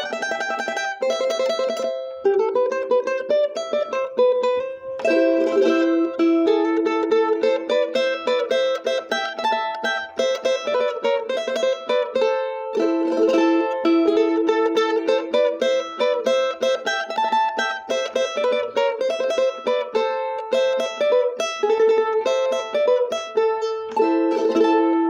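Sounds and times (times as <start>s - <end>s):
charango plucked melody: 0.0s - 25.0s.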